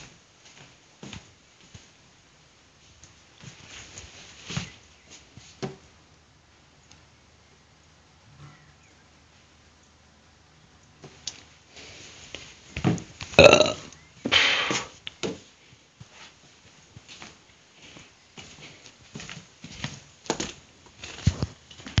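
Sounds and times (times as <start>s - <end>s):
breathy rush of air: 14.3s - 15.0s.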